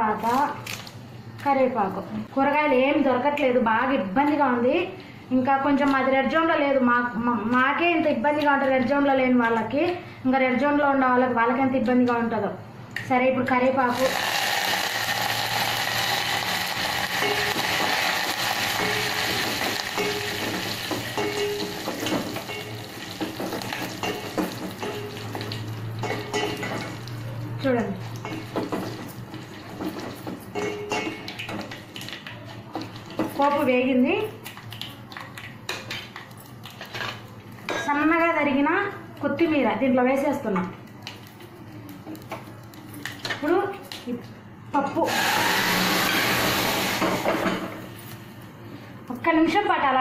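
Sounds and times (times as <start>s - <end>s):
woman speaking: 0.0s - 0.6s, 1.4s - 14.1s, 27.5s - 28.0s, 33.4s - 34.4s, 37.8s - 40.7s, 43.4s - 45.1s, 49.1s - 50.0s
oil sizzling in a pot: 13.9s - 27.1s.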